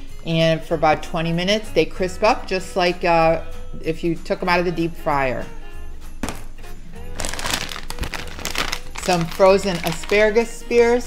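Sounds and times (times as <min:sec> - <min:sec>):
plastic bag crinkling: 0:07.1 - 0:10.3.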